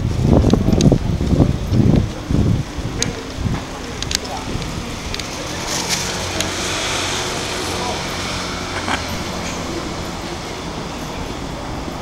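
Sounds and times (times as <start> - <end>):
low engine hum: 0.0 - 12.0
traffic noise: 0.0 - 12.0.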